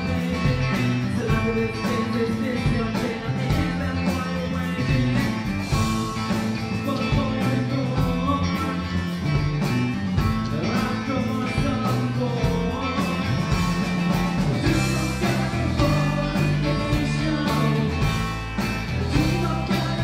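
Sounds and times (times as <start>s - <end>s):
lead singer singing: 0.0s - 9.5s, 10.4s - 20.0s
rock band playing: 0.0s - 20.0s.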